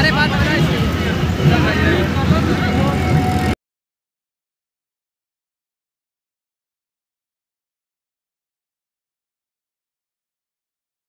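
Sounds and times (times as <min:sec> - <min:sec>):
people's voices: 0:00.0 - 0:03.6
vehicle engine rumble: 0:00.0 - 0:03.6.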